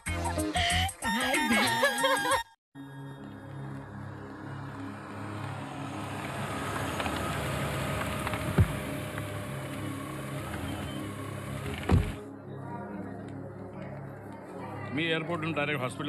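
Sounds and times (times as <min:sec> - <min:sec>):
car engine and tyre noise: 0:03.1 - 0:12.3
sharp thump: 0:08.4 - 0:08.9, 0:11.8 - 0:12.2.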